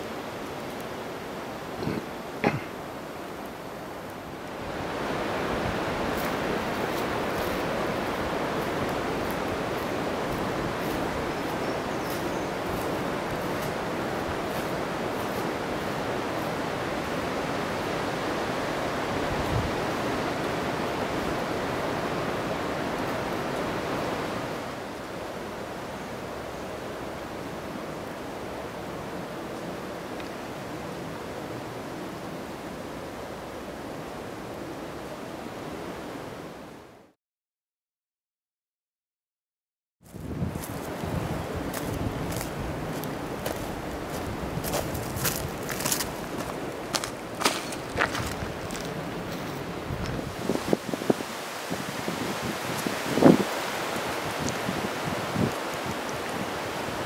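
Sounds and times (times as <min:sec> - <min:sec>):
wind rushing through leaves: 0:00.0 - 0:37.2, 0:40.0 - 0:57.0.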